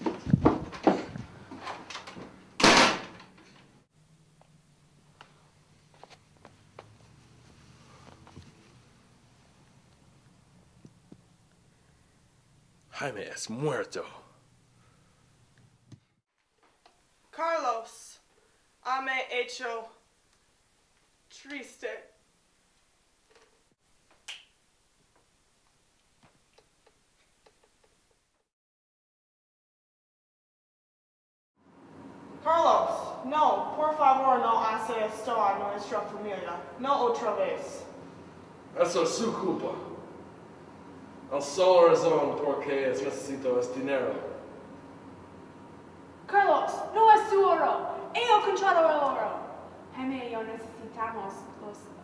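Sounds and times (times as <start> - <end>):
front door shutting: 0.0 - 3.7.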